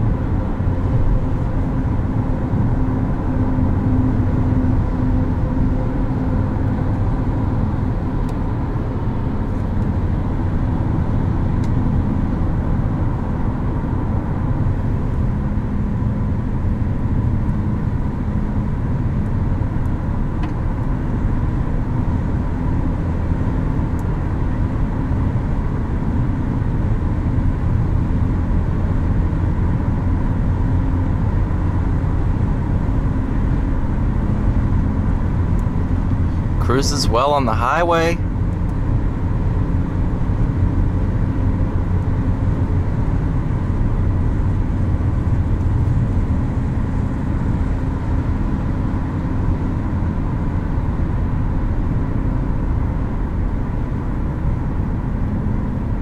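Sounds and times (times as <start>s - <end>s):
low engine hum: 0.0s - 56.0s.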